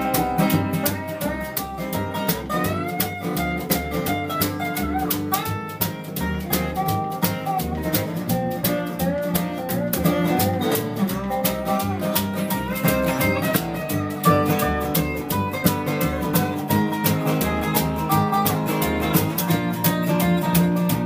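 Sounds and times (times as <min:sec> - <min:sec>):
lap steel guitar sliding lead: 0:00.0 - 0:21.0
light percussion: 0:00.0 - 0:21.0
strummed acoustic guitar: 0:00.0 - 0:21.0
upright bass: 0:00.0 - 0:21.0.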